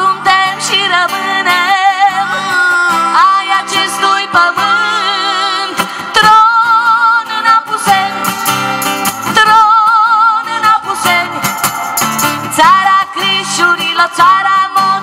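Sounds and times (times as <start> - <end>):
woman singing with vibrato: 0.0 - 8.4, 9.2 - 15.0
strummed acoustic guitar: 0.0 - 15.0.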